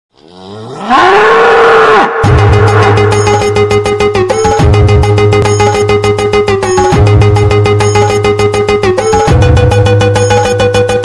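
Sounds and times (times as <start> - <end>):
bull bellowing: 0.2 - 3.0.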